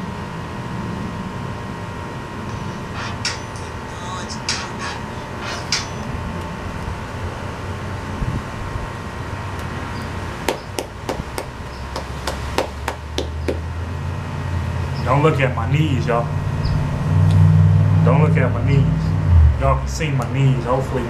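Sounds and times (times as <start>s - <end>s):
steady low hum: 0.0s - 21.0s
person clapping: 10.5s - 13.6s.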